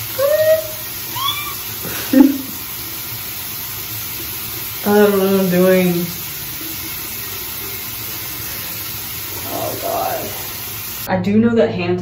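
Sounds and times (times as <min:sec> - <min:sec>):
steady hiss: 0:00.0 - 0:11.1
woman squealing: 0:00.1 - 0:02.4
woman laughing: 0:00.2 - 0:02.6.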